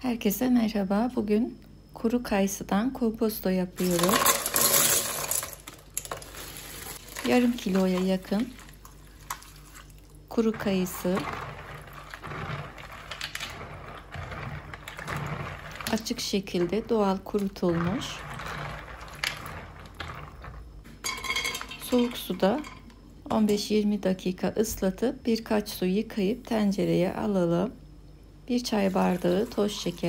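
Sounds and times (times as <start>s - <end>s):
plastic bag crinkling: 3.8s - 10.2s
dried fruit tumbling into colander: 3.8s - 23.6s, 28.6s - 30.0s.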